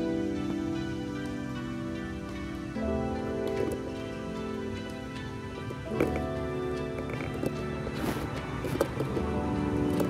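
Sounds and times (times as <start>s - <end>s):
slow sustained chords: 0.0s - 10.0s.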